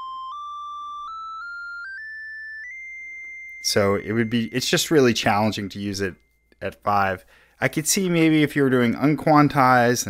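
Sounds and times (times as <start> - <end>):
synthesizer high tone stepping up: 0.0 - 5.7.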